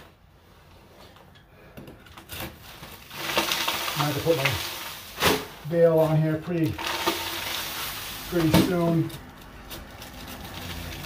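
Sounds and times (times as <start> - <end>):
plaster scraping and crumbling: 2.1 - 11.0.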